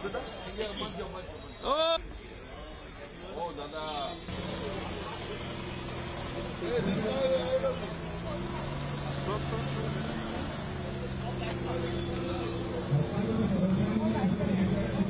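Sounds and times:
car engine running slowly: 4.3s - 15.0s.

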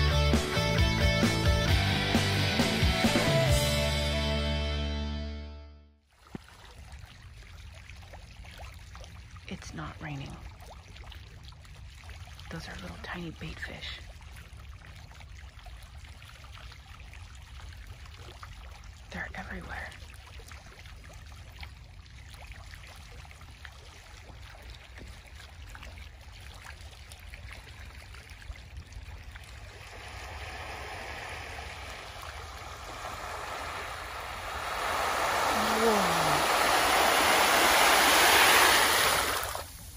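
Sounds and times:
fish splashing at water surface: 20.1s - 39.9s
steady low rumble: 28.5s - 39.9s.

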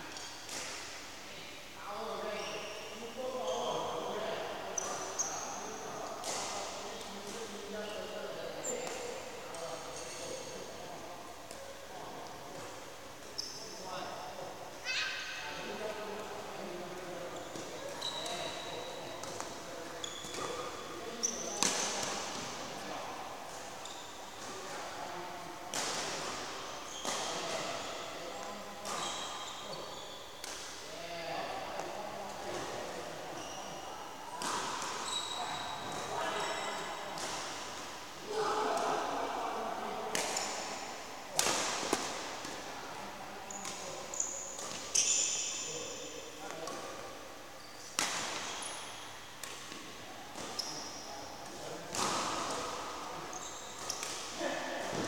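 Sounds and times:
shoe squeaks: 2.3s - 4.0s, 13.4s - 13.7s, 17.4s - 19.1s, 20.0s - 21.6s, 23.8s - 24.4s, 26.8s - 27.3s, 28.9s - 30.4s, 33.3s - 33.9s, 35.0s - 36.9s, 43.5s - 46.0s, 47.6s - 49.1s, 50.4s - 51.1s, 53.3s - 54.0s
racket hitting shuttlecock: 41.4s - 42.6s, 51.5s - 52.9s.

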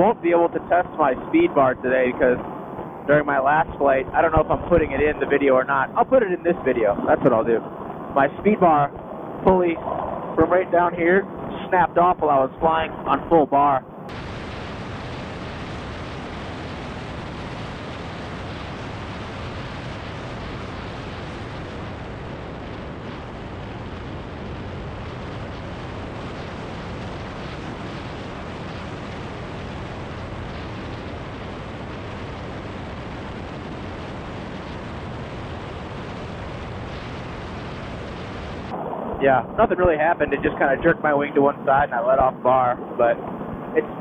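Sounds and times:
wind rushing: 0.0s - 44.0s.

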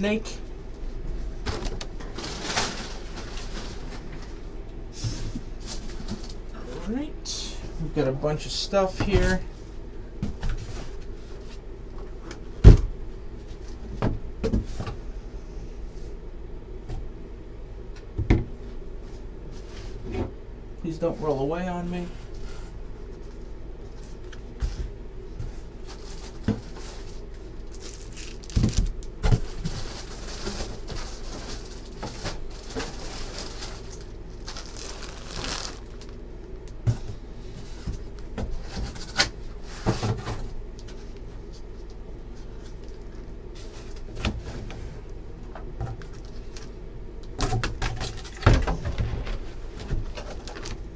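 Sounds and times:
low room hum: 0.0s - 50.9s
packing paper rustling: 1.5s - 4.4s, 25.5s - 36.2s, 50.0s - 50.9s
things being handled: 25.4s - 36.2s.

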